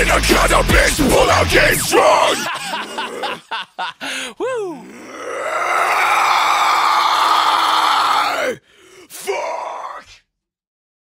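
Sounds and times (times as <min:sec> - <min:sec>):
screamed metal vocal: 0:00.0 - 0:03.6, 0:04.5 - 0:10.2.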